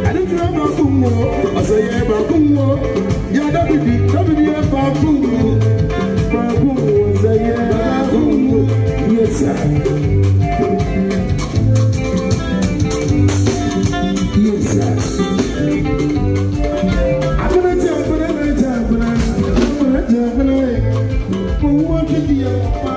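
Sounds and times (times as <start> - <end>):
person singing: 0.0 - 11.5, 13.5 - 16.0, 17.2 - 22.9
highlife band playing: 0.0 - 22.9.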